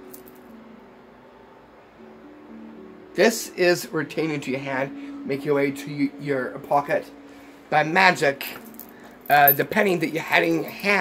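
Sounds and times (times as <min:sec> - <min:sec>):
coins clinking on keyring: 0:00.1 - 0:00.4, 0:08.4 - 0:11.0.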